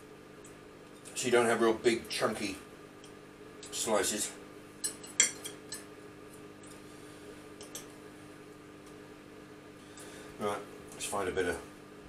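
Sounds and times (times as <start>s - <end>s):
cutlery clinking on ceramic bowl: 4.8s - 5.9s.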